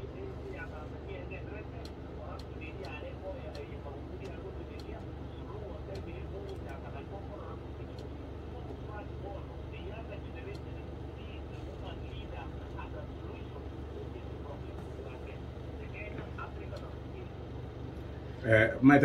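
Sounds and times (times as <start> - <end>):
faint indistinct speech: 0.0 - 17.6
low background hum: 0.0 - 19.0.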